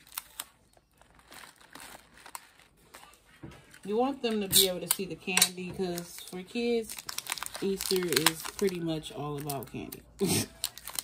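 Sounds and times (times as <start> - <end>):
paper packet crinkling: 0.0 - 5.0, 5.8 - 11.0.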